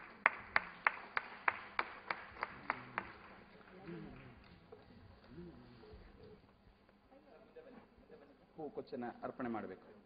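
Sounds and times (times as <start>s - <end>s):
hand claps: 0.0s - 5.4s.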